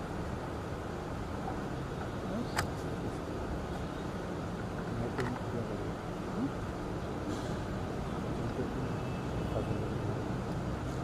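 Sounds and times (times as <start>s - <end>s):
low background rumble and hiss: 0.0s - 11.0s.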